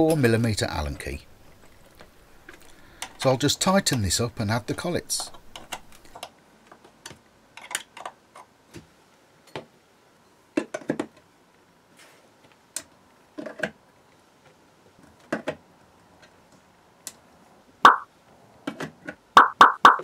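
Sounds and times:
light clicks and knocks of metal parts: 0.0 - 8.5.

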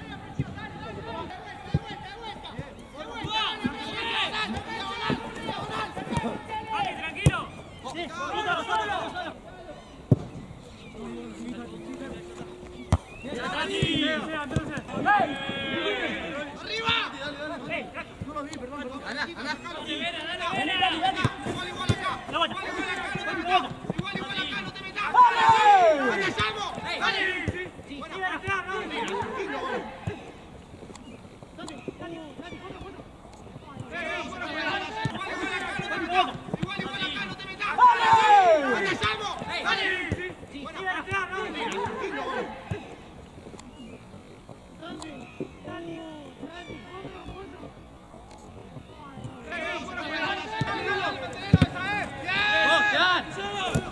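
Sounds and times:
people shouting and calling out: 0.0 - 30.4, 31.6 - 43.0, 44.8 - 53.9.

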